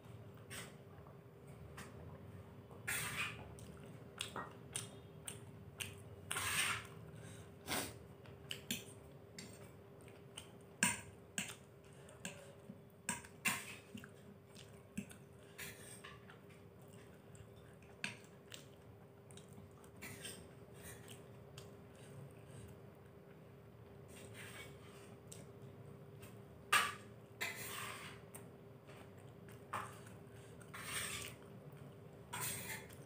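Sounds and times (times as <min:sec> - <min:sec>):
faint crunchy chewing: 0:02.8 - 0:33.0.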